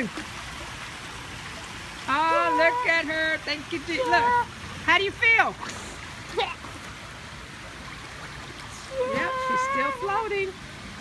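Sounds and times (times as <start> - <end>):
water moving in swimming pool: 0.0 - 11.0.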